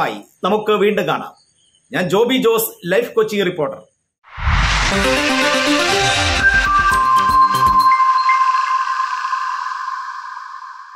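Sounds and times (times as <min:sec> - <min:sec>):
electronic jingle chord: 0:04.7 - 0:10.9.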